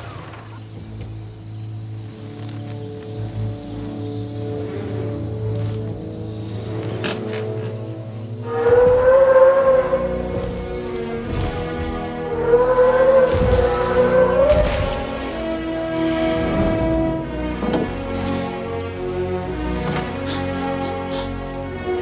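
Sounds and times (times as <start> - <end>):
orchestral film score: 0.0 - 22.0
low sustained drone: 8.1 - 19.6.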